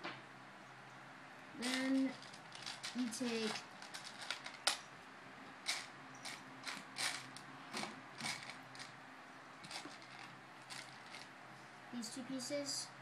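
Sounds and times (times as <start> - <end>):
plastic bricks clicking and clattering: 1.6 - 4.8, 5.7 - 8.9.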